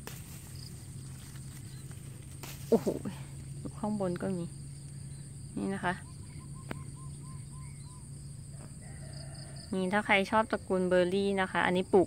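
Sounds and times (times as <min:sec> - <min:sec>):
high insect drone: 0:00.0 - 0:12.0
rooster crowing: 0:08.4 - 0:09.8.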